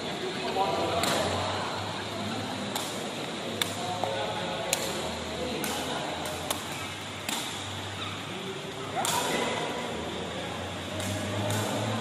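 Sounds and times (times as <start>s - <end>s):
ball struck with a crack: 5.6s - 7.6s.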